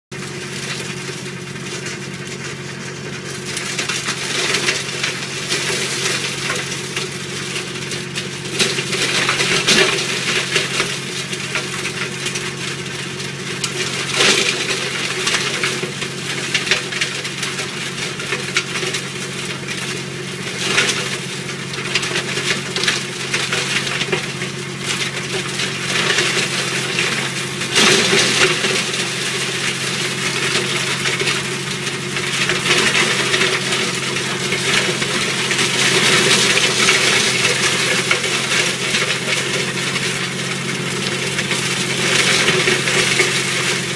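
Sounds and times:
tractor engine under load: 0:00.1 - 0:43.9
wood crackling and crunching: 0:00.2 - 0:43.9.

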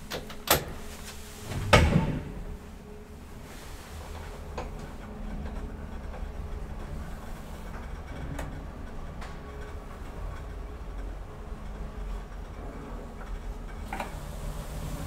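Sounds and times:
elevator low rumble: 0:00.0 - 0:15.0.

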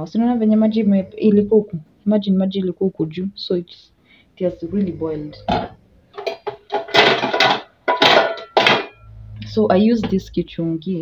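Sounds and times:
metal pot scraping and clattering: 0:05.3 - 0:09.4.

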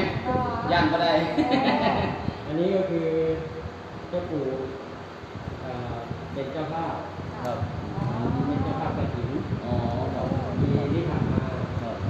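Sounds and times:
man speaking: 0:00.0 - 0:01.4.

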